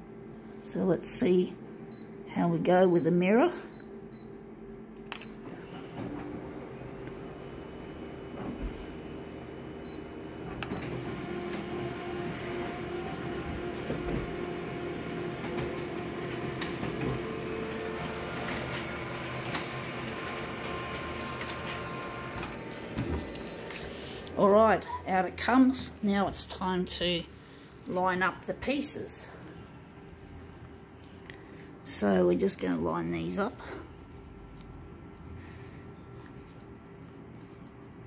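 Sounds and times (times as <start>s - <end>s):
copier whirring hum: 0.0s - 38.0s
copier scanning: 5.2s - 25.7s.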